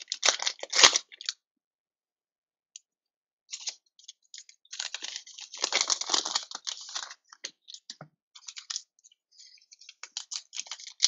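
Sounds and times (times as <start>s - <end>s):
plastic wrapper tearing and crinkling: 0.0s - 1.3s, 4.7s - 7.8s, 9.8s - 11.0s.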